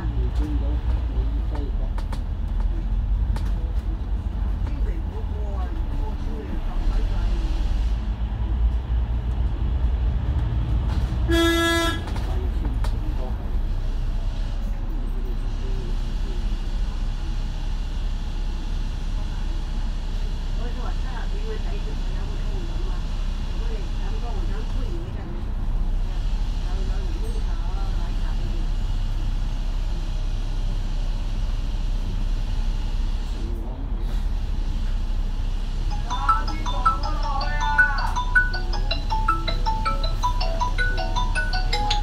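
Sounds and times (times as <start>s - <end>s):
bus engine and road rumble: 0.0s - 42.0s
vehicle horn toot: 11.3s - 12.1s.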